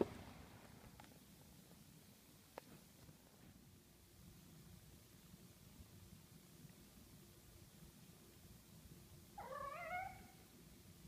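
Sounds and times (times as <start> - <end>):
kitten meowing: 9.4 - 10.3.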